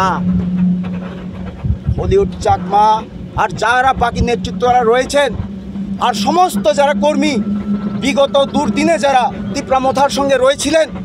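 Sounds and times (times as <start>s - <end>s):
low thumps: 0.0s - 11.0s
vehicle engine idling: 0.0s - 11.0s.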